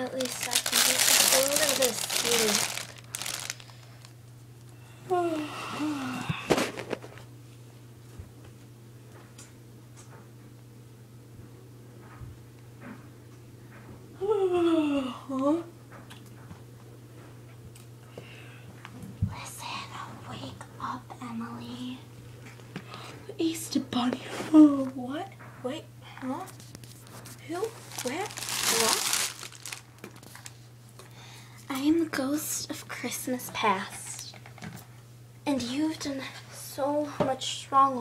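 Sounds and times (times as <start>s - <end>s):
crinkling and rustling: 0.0s - 4.2s, 26.4s - 30.7s
steady low hum: 0.0s - 38.0s.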